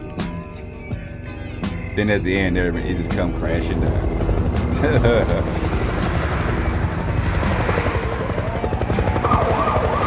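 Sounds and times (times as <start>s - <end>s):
helicopter rotor chopping: 1.6s - 10.0s
siren wailing: 6.3s - 10.0s.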